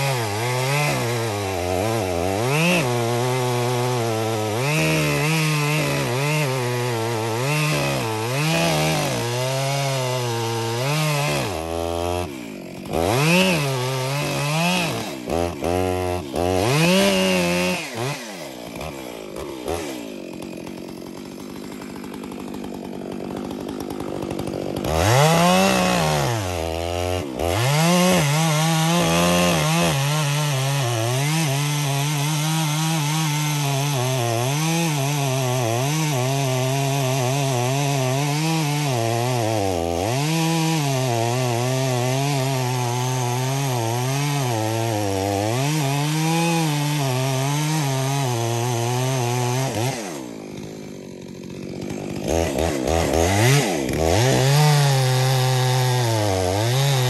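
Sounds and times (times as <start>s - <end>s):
chainsaw cutting wood: 0.0s - 57.0s.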